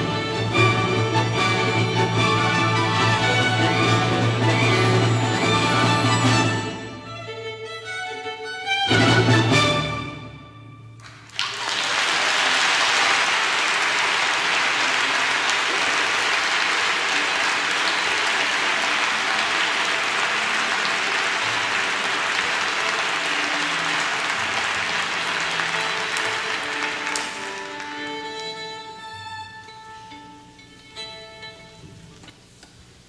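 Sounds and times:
orchestra notes: 0:00.0 - 0:11.0, 0:15.6 - 0:32.3
audience applauding: 0:11.0 - 0:28.3.

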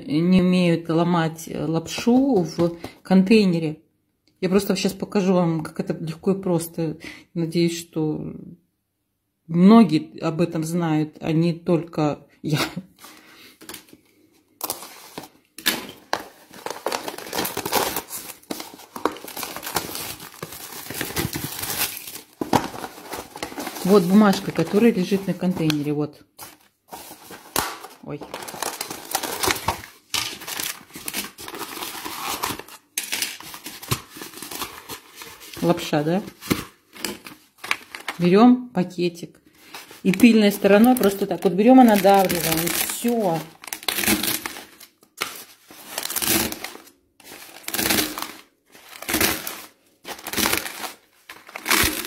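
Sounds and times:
plastic film lid crinkling: 0:13.1 - 0:14.0, 0:14.6 - 0:38.2, 0:39.6 - 0:52.0.

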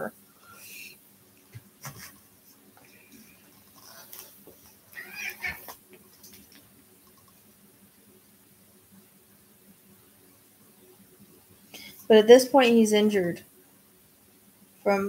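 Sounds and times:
cat meowing: 0:04.9 - 0:05.7.

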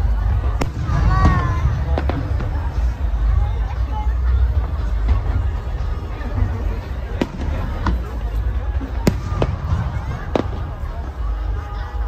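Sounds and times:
fireworks bangs: 0:00.2 - 0:03.2, 0:06.8 - 0:12.0.

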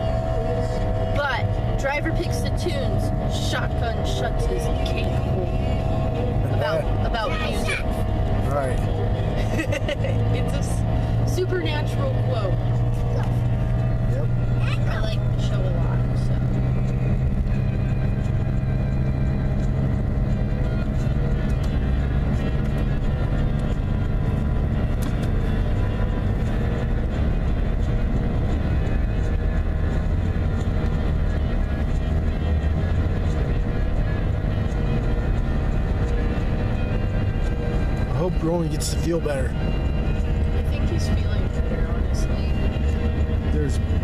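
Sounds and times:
background music: 0:00.0 - 0:44.0
car road and engine rumble: 0:00.0 - 0:44.0.

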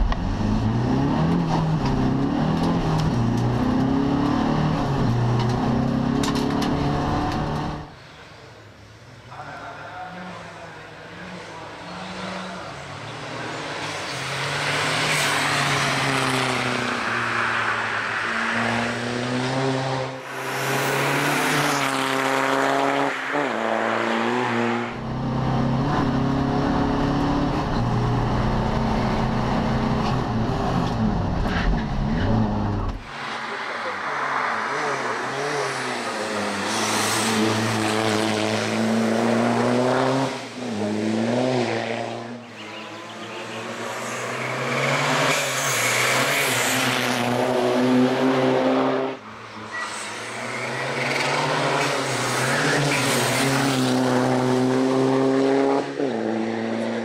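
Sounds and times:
race car accelerating: 0:00.0 - 0:07.9, 0:11.0 - 0:57.0.

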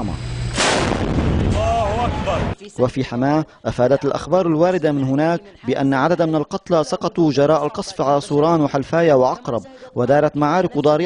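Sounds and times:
heavy gun blast: 0:00.5 - 0:02.6.

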